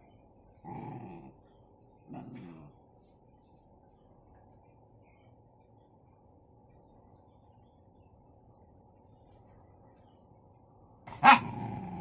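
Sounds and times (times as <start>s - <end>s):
dog growling: 0.6s - 1.5s, 2.1s - 2.8s, 11.2s - 12.0s.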